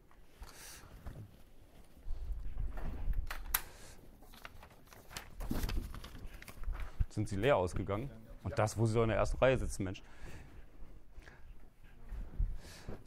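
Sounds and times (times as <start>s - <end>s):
paper sheets handled: 4.2s - 7.4s.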